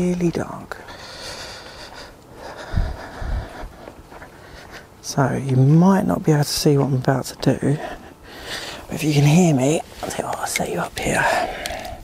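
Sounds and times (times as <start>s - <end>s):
breathy rustling noise: 0.8s - 5.1s, 7.7s - 9.0s, 9.8s - 12.0s
dull low thumps: 2.6s - 4.2s.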